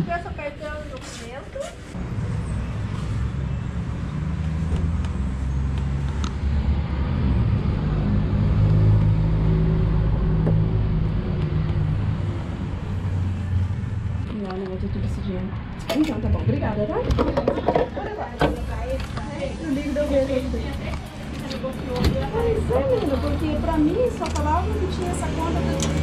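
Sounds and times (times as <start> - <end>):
vehicle engine rumbling: 1.9 - 26.0.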